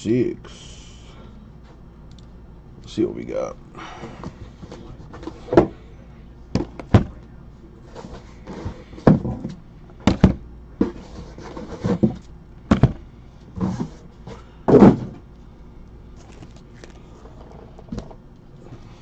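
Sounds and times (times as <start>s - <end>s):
boxes thudding on a table: 6.6s - 7.2s, 8.1s - 13.0s, 14.7s - 15.2s.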